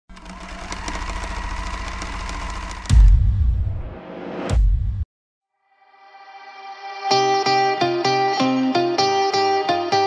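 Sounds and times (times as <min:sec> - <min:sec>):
mechanical buzzing and rattling: 0:00.1 - 0:03.2
deep bass boom: 0:02.8 - 0:05.0.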